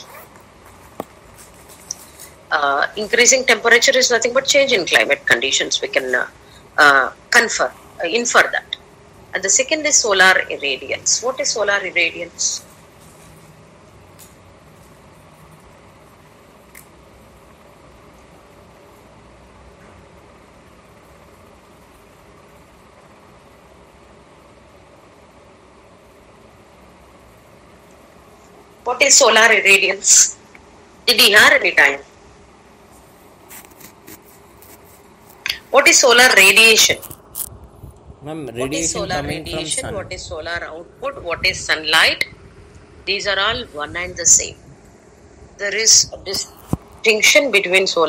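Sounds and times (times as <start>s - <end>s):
faint background hiss: 0.0s - 48.0s.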